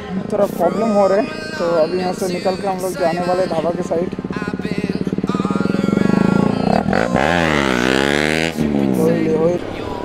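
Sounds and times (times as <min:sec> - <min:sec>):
motorcycle engine pulling away: 0:00.4 - 0:10.0.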